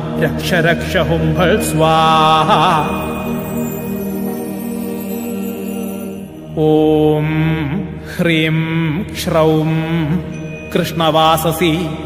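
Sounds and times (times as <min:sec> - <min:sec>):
man chanting: 0:00.0 - 0:03.8, 0:06.6 - 0:12.0
steady musical drone: 0:00.0 - 0:08.7.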